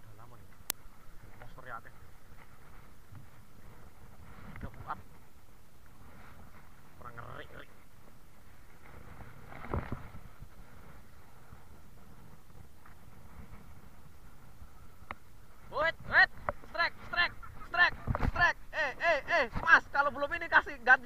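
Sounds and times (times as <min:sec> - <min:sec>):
wind: 0:00.0 - 0:21.0.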